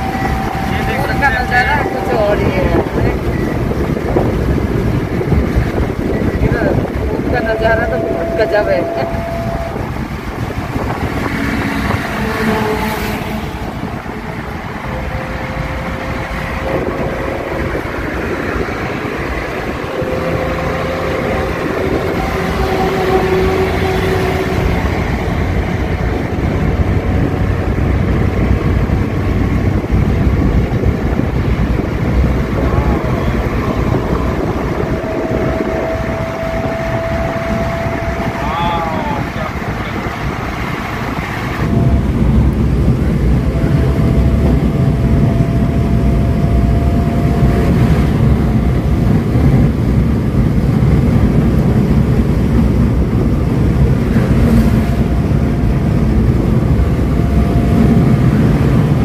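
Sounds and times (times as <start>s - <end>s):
road and wind noise: 0.0s - 59.0s
van engine: 0.0s - 59.0s.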